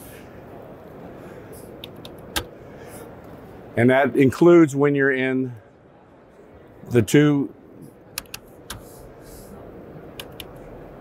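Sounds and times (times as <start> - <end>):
exhibition hall background noise: 0.0 - 11.0
keyboard and mouse clicks: 1.8 - 2.5, 8.1 - 8.9, 10.1 - 10.6.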